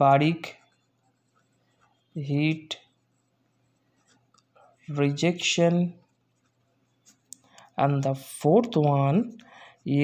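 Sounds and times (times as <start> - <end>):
pen scratching on paper: 0.3 - 8.0.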